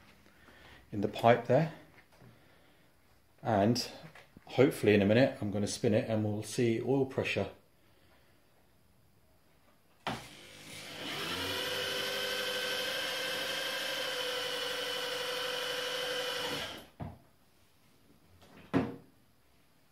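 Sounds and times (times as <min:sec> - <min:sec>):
cordless drill whining: 0:10.0 - 0:17.0.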